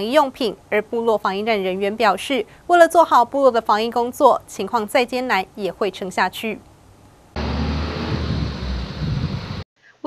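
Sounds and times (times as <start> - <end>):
outdoor noise: 0.0 - 10.0
truck engine idling: 7.4 - 9.6.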